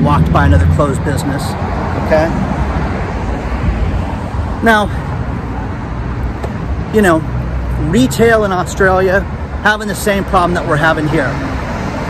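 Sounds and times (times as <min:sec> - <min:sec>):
passing cars rumbling: 0:00.0 - 0:12.0.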